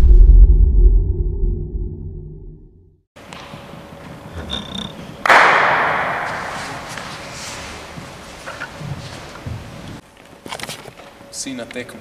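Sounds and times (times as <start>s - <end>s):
faint hall room noise: 3.2s - 12.0s
loud bang echoing in a hall: 5.2s - 7.1s.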